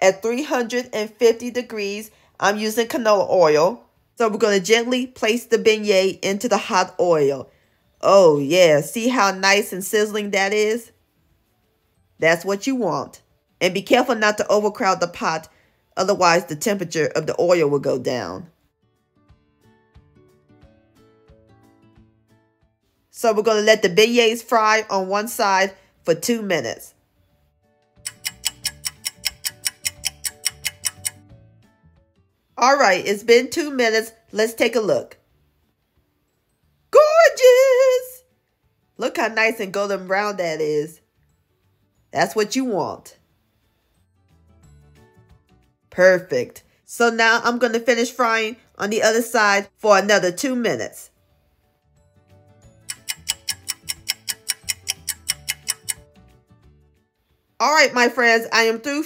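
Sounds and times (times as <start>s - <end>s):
soft music: 0.0s - 59.0s
clock ticking: 28.1s - 31.2s, 52.8s - 56.0s.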